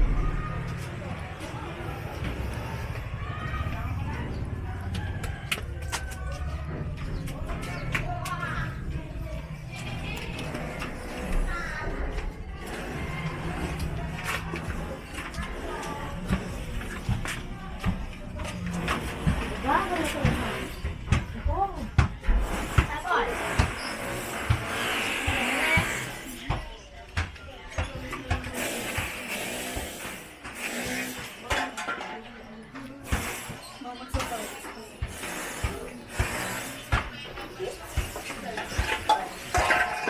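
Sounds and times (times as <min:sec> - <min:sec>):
indistinct voices: 0:00.0 - 0:40.0.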